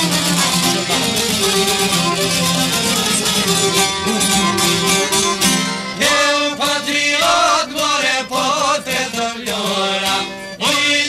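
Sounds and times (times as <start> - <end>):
plucked lutes: 0.0 - 8.1
man singing ornamented melody: 2.3 - 11.0.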